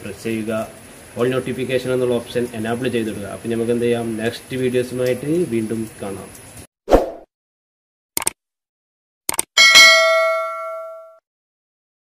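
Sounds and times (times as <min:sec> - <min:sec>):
bright bell ding: 0:09.6 - 0:11.2.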